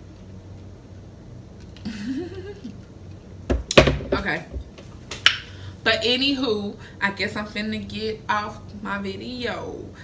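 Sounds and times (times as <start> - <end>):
woman speaking: 4.1 - 4.6, 5.8 - 10.0.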